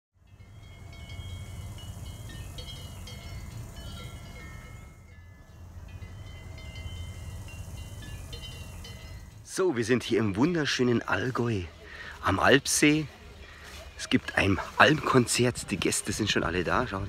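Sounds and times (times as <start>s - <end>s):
cowbells ringing: 0.2s - 17.0s.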